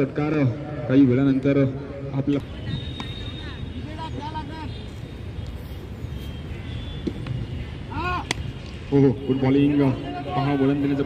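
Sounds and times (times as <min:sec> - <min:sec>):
steady background noise: 0:00.0 - 0:11.0.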